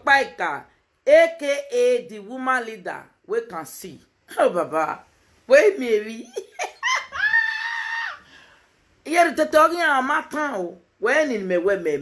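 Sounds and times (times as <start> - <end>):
woman screaming: 6.8 - 8.3.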